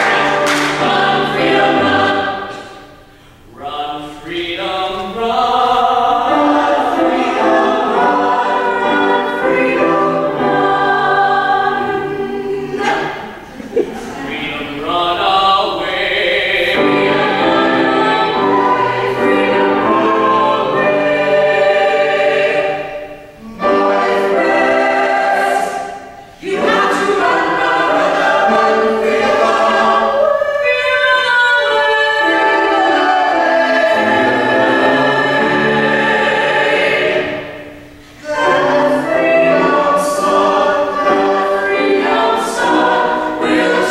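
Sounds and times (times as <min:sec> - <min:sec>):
piano accompaniment: 0:00.0 - 0:03.0, 0:05.6 - 0:13.4, 0:16.2 - 0:43.9
vocal ensemble singing in harmony: 0:00.0 - 0:43.9.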